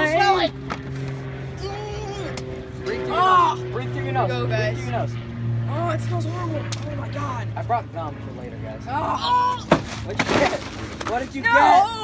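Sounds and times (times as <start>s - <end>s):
low machine hum: 0.0s - 12.0s.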